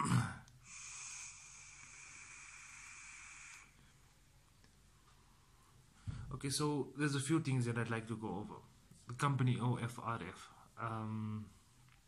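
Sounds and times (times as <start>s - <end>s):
air hissing through vape: 0.6s - 3.8s.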